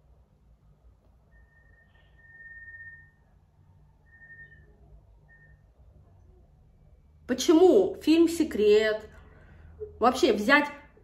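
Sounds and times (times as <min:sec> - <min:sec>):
faint high whistling tone: 0:01.2 - 0:05.9.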